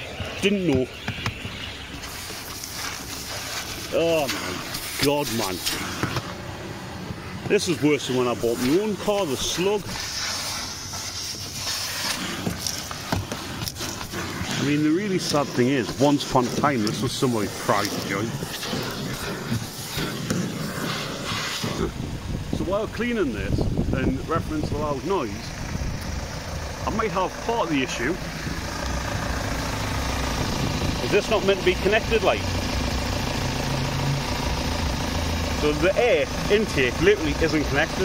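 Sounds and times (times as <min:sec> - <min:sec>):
vacuum cleaner hissing: 0:02.0 - 0:06.2, 0:07.5 - 0:22.0.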